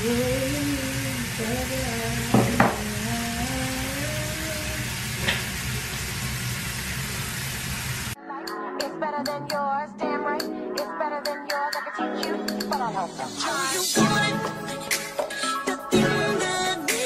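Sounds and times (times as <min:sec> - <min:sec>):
steady hiss: 0:00.0 - 0:08.2
background music with plucked notes: 0:08.2 - 0:17.0.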